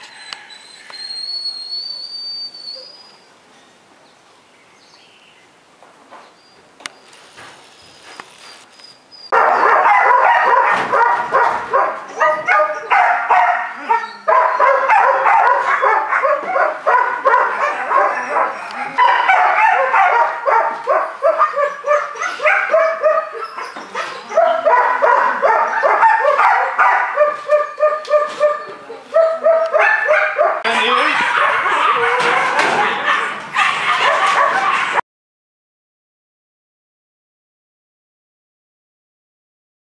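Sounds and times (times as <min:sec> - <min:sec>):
puppy barking and yipping: 0:09.3 - 0:35.0.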